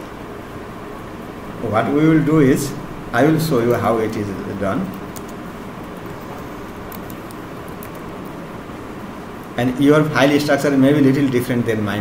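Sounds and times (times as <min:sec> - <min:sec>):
steady background noise: 0:00.0 - 0:12.0
keyboard clicks: 0:04.8 - 0:08.1.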